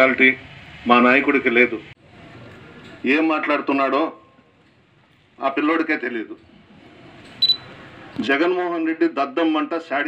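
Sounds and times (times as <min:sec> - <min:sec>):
man speaking into a microphone: 0:05.4 - 0:06.4, 0:08.2 - 0:10.0.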